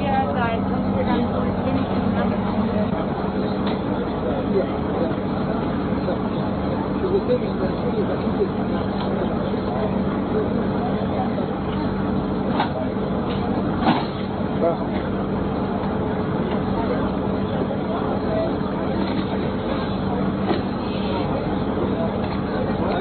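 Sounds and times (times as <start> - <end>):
crowd talking: 0.0 - 23.0
large vehicle engine idling: 0.0 - 23.0.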